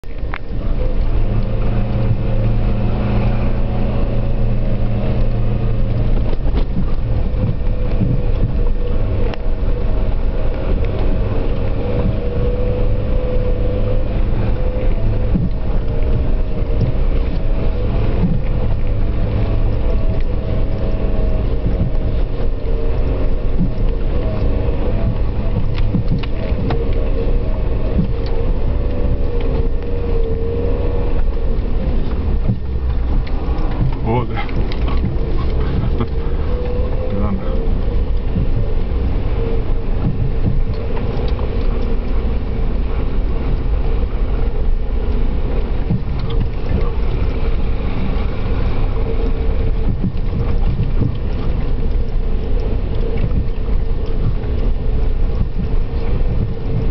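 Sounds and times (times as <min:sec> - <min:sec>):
vehicle engine low rumble: 0:00.0 - 0:56.9
vehicle knocking over bumps: 0:25.0 - 0:27.0.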